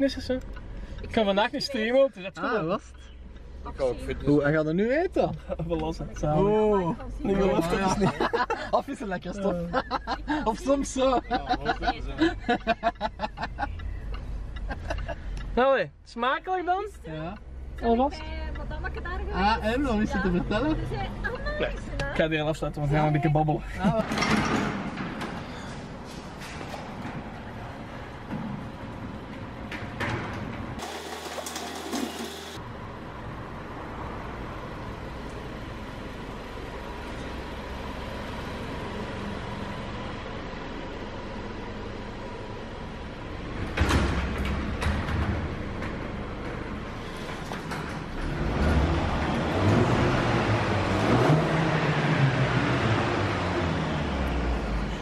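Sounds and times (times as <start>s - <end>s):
car engine starting and running: 0.0s - 55.0s
garage door motor humming: 29.8s - 32.6s.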